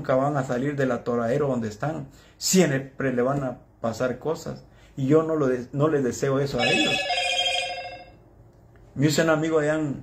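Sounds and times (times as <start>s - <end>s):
electronic ringing tone: 6.6s - 8.2s.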